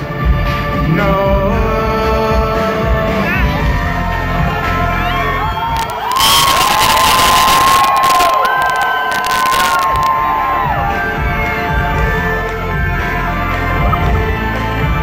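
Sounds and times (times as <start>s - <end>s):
concert music: 0.0s - 15.0s
crowd cheering and yelling: 3.4s - 15.0s
high-pitched yells: 5.7s - 10.8s.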